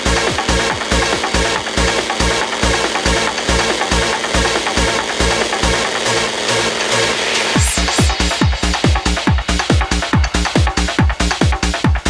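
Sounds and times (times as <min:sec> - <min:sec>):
rising noise sweep: 0:00.0 - 0:11.3
hard trance music: 0:00.0 - 0:12.0.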